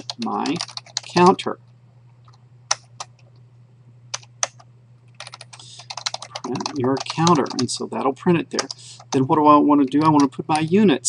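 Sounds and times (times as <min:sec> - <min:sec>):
computer keyboard typing: 0:00.0 - 0:01.4, 0:02.3 - 0:03.2, 0:04.1 - 0:07.7, 0:08.5 - 0:09.3
steady low hum: 0:00.0 - 0:11.0.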